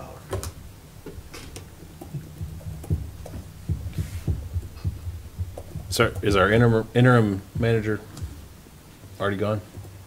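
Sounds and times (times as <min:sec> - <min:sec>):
steady low hum: 0:00.0 - 0:10.0
soft low thumps and knocks: 0:00.3 - 0:10.0.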